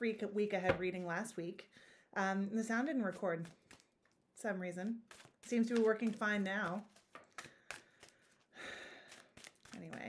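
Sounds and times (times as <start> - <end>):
playing cards clicking and rustling: 3.3 - 4.0, 5.0 - 10.0.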